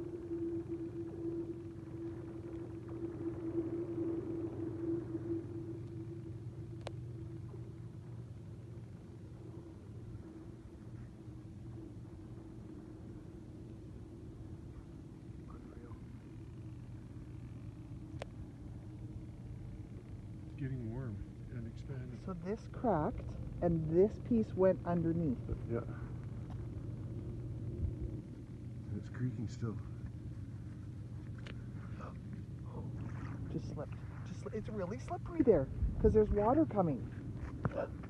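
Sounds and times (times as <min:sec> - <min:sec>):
low drone of lake ice: 0:00.0 - 0:38.0.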